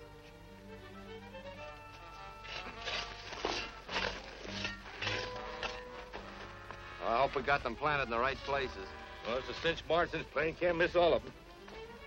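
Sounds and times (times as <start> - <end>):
dramatic orchestral film music: 0.0 - 12.0.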